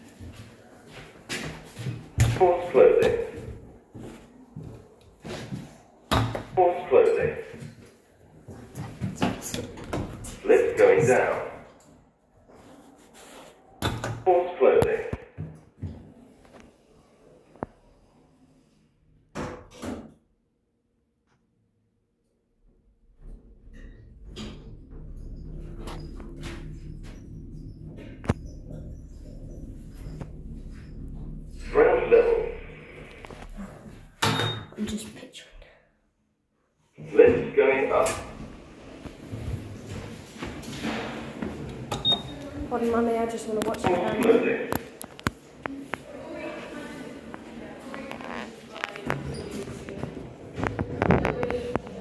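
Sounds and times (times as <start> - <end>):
lift drive humming: 23.0 - 34.3.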